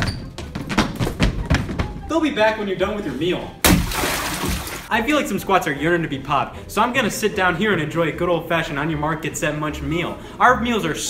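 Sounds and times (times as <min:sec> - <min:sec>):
light background music: 0:00.0 - 0:11.0.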